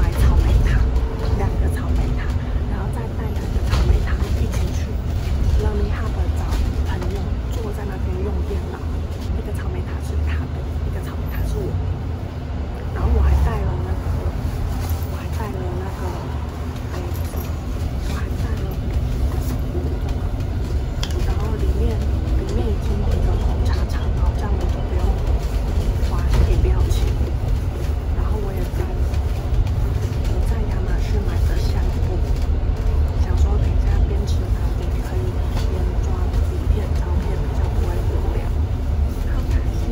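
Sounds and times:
woman talking: 0:00.0 - 0:11.9, 0:12.7 - 0:39.9
bus engine rumble: 0:00.0 - 0:39.9.

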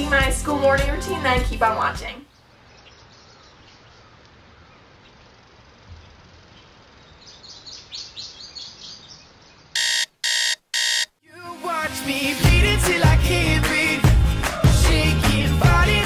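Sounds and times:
faint bird chirps: 0:02.3 - 0:10.0
electronic alarm beeps: 0:09.8 - 0:11.1.

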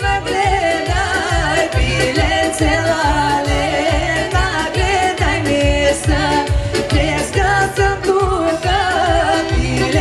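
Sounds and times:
band with thumping bass beat: 0:00.0 - 0:10.0
woman singing: 0:00.0 - 0:10.0.

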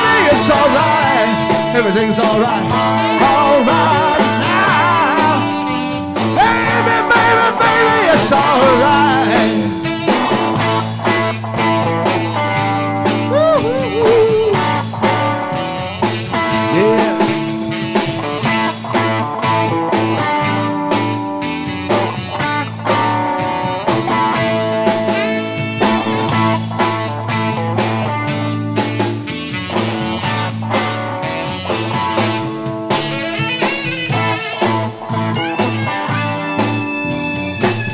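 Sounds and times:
electric guitar with bending notes: 0:00.0 - 0:37.9
steady drum beat: 0:00.0 - 0:37.9.

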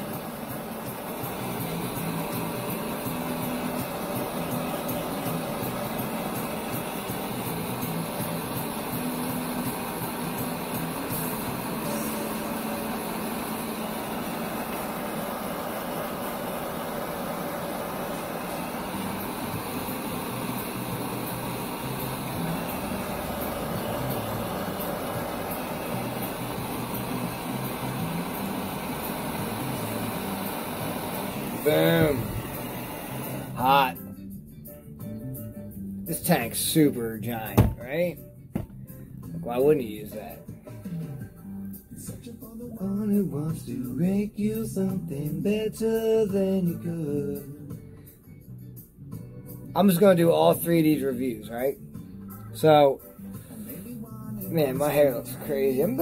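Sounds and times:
butane torch hissing: 0:00.0 - 0:34.0, 0:53.2 - 0:56.0.

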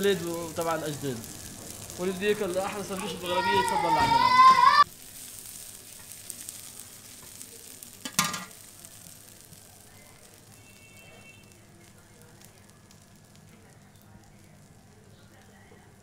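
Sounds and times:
food sizzling on a metal pan: 0:00.0 - 0:16.0
metal spoon clanking on pan: 0:08.0 - 0:08.6.

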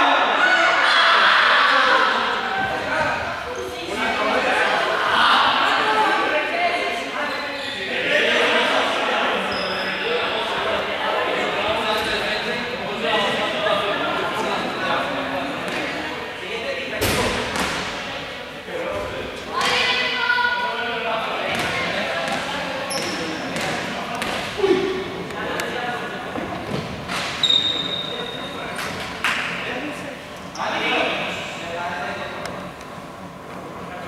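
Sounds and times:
players shouting in a hall: 0:00.0 - 0:12.5, 0:19.5 - 0:22.2
balls bouncing on court floor: 0:21.5 - 0:24.6.

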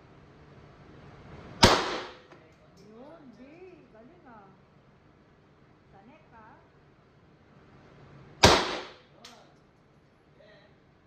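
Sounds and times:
pistol shot indoors: 0:01.6 - 0:02.3, 0:08.4 - 0:09.4.

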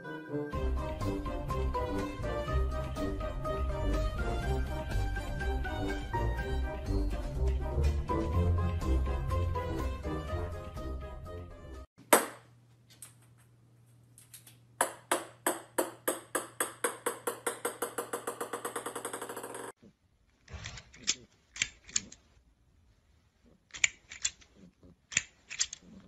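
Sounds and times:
ball bouncing on wooden floor: 0:14.8 - 0:19.7.

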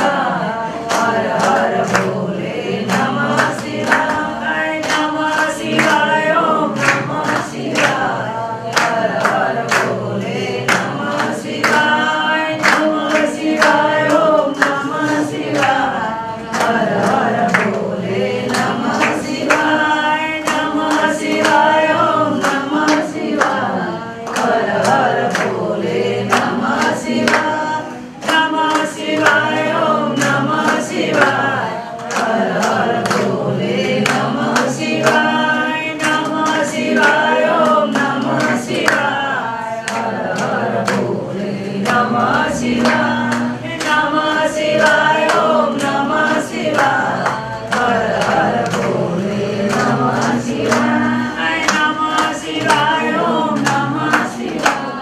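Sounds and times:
group singing: 0:00.0 - 0:55.0
rhythmic hand clapping: 0:00.0 - 0:55.0.

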